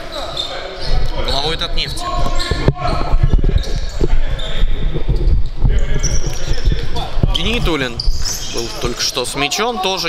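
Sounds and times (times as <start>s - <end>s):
shoe squeaks: 0.0s - 9.2s.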